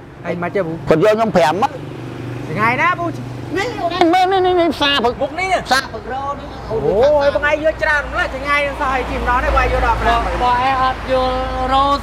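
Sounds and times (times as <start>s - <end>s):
man speaking: 0.2s - 1.8s, 2.5s - 11.1s.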